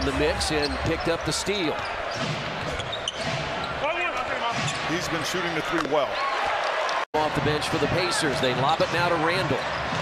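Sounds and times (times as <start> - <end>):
sneakers squeaking: 0.0 - 5.0
arena crowd noise: 0.0 - 10.0.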